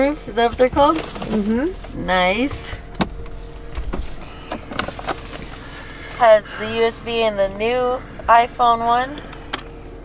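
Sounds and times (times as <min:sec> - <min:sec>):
faint cabin hum: 0:00.0 - 0:10.0.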